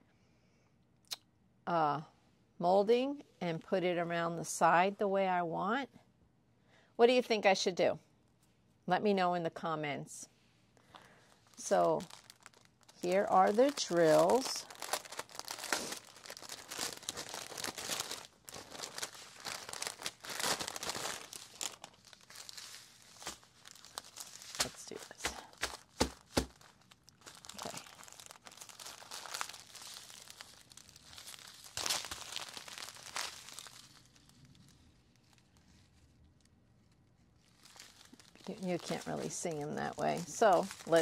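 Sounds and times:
plastic packaging crinkling: 10.8 - 41.0.

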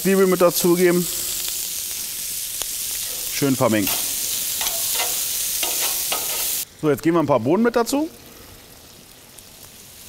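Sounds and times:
food sizzling in a pan: 0.0 - 10.0.

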